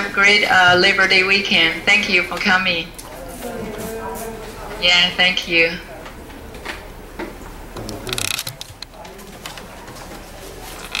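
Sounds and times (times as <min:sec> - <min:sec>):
low voices murmuring: 0:00.0 - 0:11.0
scattered clicks: 0:07.8 - 0:09.7.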